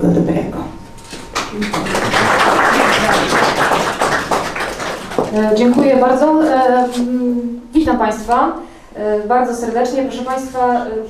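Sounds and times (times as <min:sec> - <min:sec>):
audience applauding: 0:01.3 - 0:05.6.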